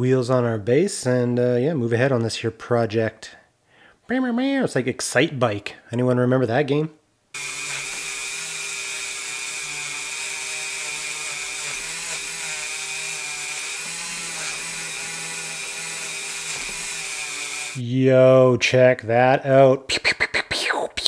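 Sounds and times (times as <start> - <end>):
rotary tool whining: 7.4 - 17.8.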